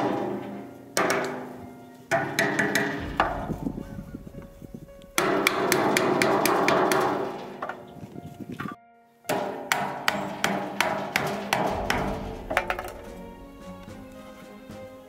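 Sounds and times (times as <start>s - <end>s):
hammer striking plastic pipe: 0.0s - 4.5s, 5.1s - 7.8s, 9.3s - 14.5s.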